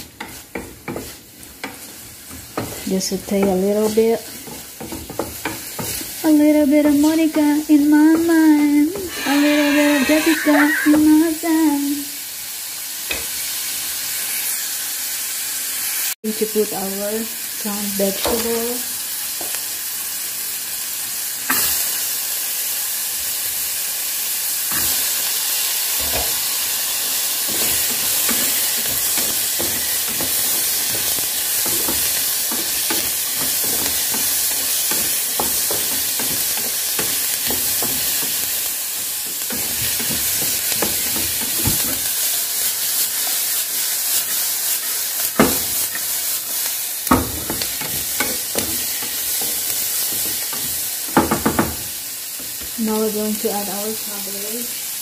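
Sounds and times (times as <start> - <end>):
wooden spatula knocking and scraping pan: 0.0 - 9.2, 27.4 - 42.2, 44.9 - 46.4, 47.0 - 52.8
vegetables sizzling in oil: 0.0 - 55.0.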